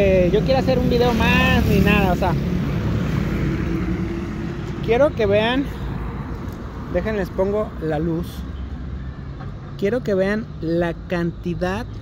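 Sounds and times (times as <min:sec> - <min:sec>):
person speaking: 0:04.6 - 0:08.5.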